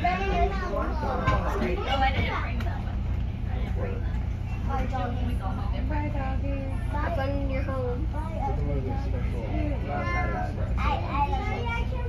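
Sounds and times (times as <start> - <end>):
people talking: 0.0 - 12.0
train car low rumble: 0.0 - 12.0.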